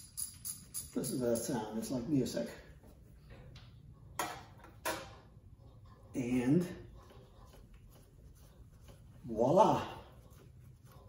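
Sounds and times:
ratchet wrench clicking: 0.0s - 1.5s.

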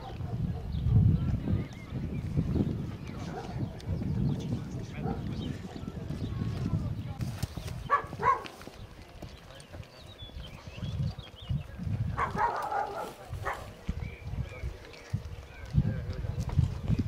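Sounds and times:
footsteps on dirt path: 1.2s - 17.0s.

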